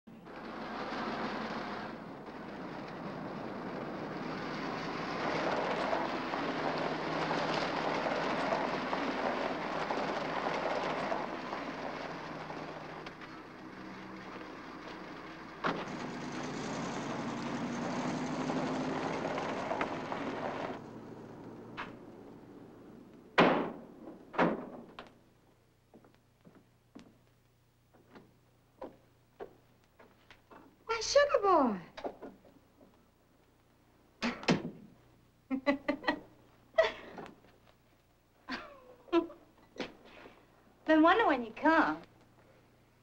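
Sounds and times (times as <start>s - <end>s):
car driving past: 1.0s - 24.0s
faint rising hum: 1.8s - 24.4s
sharp knock: 23.4s - 23.8s.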